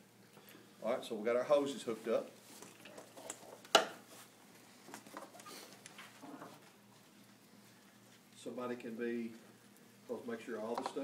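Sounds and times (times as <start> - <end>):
rustling and handling noises: 1.6 - 11.0.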